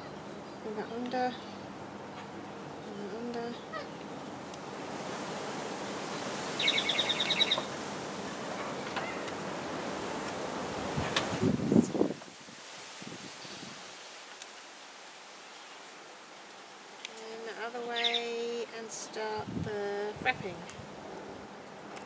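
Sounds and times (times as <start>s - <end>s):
outdoor background rush: 0.0s - 22.0s
small bird trilling chirps: 6.6s - 7.7s, 18.0s - 18.3s.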